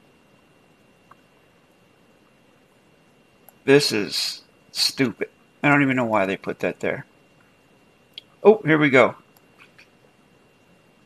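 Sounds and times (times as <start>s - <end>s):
computer mouse clicks: 3.4s - 3.6s.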